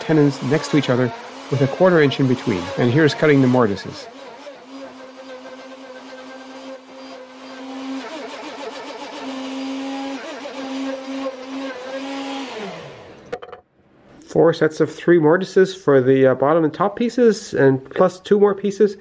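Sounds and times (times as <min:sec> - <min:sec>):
wood router whining: 0:00.0 - 0:13.5.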